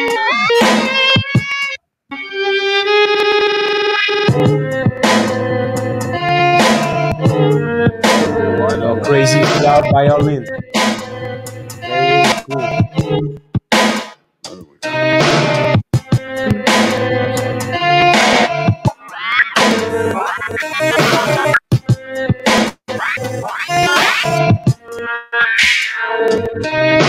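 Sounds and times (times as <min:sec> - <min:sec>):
chopped sampled melody: 0:19.5 - 0:21.6, 0:22.9 - 0:24.6.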